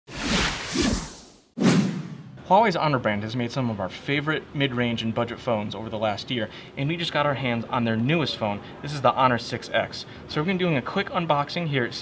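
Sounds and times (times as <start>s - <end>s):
whoosh sound effects: 0.1s - 2.4s.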